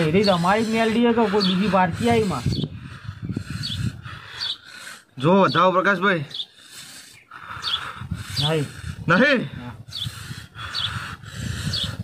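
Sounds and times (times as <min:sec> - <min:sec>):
small bird chirping: 0:03.5 - 0:08.5.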